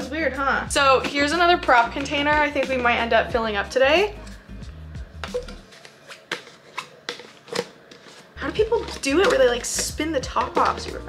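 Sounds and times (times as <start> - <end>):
jar lid clicking and scraping: 5.2 - 11.0.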